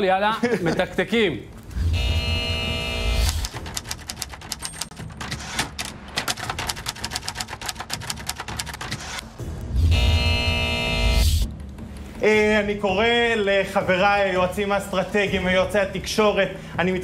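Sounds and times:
typewriter keys clacking: 3.4s - 9.3s.

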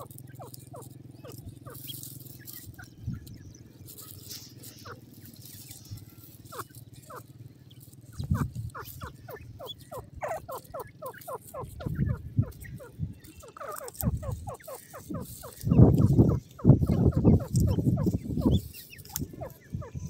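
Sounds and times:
bird chicks peeping: 0.0s - 20.0s
low muffled rumbles: 2.4s - 10.2s.

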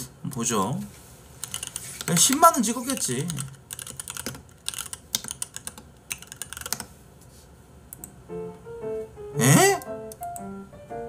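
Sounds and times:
computer keyboard typing: 1.4s - 6.9s.

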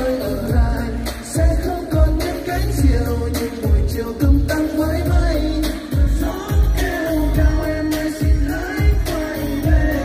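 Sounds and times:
heavy bass beat: 0.0s - 10.0s
pop song singing: 0.0s - 10.0s.

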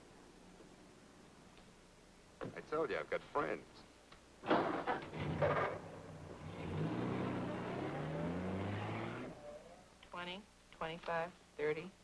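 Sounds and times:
car engine accelerating: 5.0s - 9.9s.

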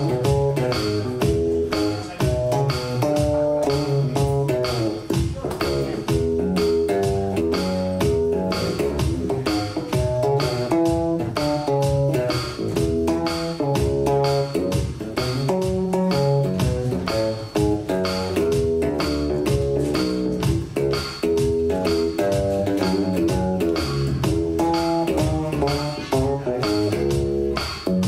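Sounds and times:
electric blues band playing: 0.0s - 28.0s
electric guitar: 0.0s - 28.0s.

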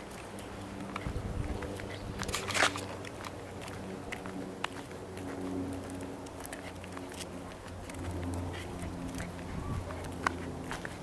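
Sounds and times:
crunch: 0.0s - 11.0s
footsteps on gritty path: 0.0s - 11.0s
steady low hum: 0.0s - 11.0s.

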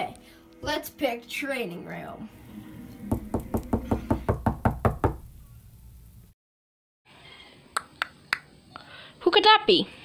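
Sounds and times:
rapid knocking on a door: 3.1s - 5.2s.

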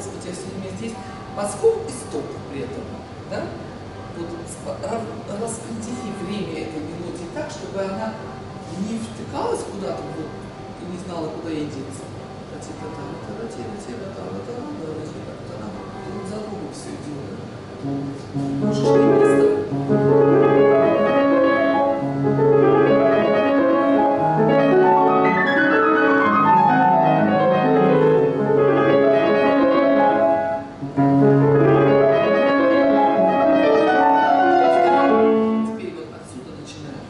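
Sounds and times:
classical piano playing: 17.8s - 36.2s.

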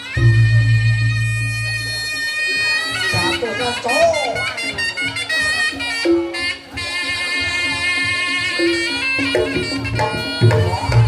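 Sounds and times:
shawm playing sliding melody: 0.0s - 11.0s.

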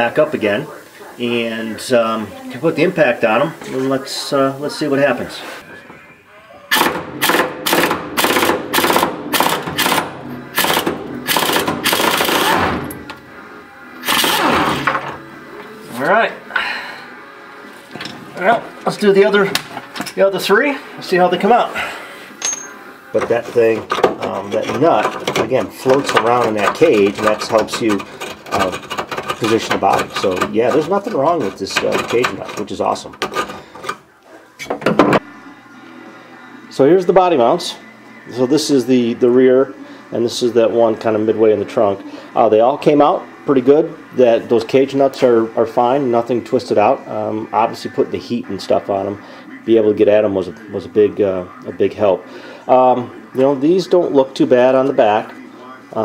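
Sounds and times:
air impact wrench hammering: 6.7s - 13.0s, 14.0s - 15.1s
tool scraping metal: 22.4s - 34.0s.

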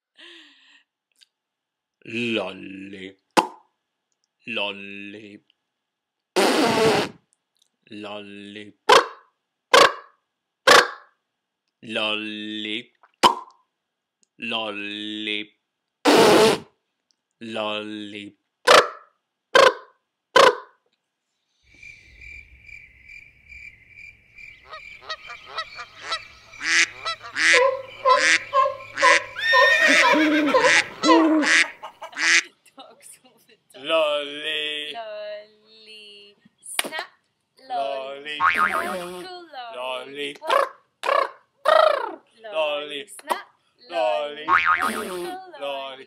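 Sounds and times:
man blowing a raspberry: 6.4s - 7.2s, 16.1s - 16.7s, 31.0s - 31.6s, 38.4s - 39.3s, 44.5s - 45.4s
short vocal burst: 6.4s - 7.2s, 16.1s - 16.7s, 38.7s - 39.3s, 44.8s - 45.4s
short honking calls: 26.1s - 32.4s.

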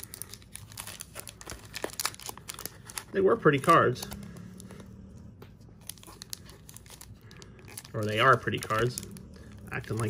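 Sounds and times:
foil wrapper tearing: 0.0s - 4.4s, 5.8s - 10.0s
foil wrapper crinkling: 0.0s - 4.8s, 5.8s - 10.0s.

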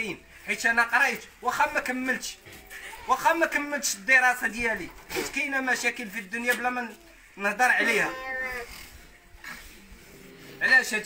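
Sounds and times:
man's voice trailing off: 7.6s - 8.7s.

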